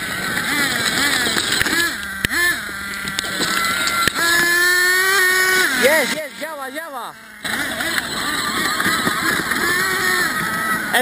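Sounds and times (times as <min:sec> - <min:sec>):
small two-stroke engine revving: 0:00.0 - 0:11.0.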